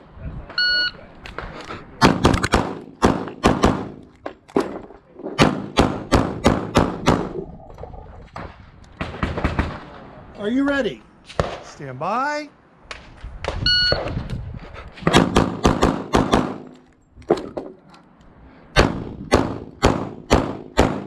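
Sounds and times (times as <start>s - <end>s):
pistol shots: 2.0s - 4.0s, 5.4s - 7.3s, 15.1s - 16.7s, 18.8s - 21.0s.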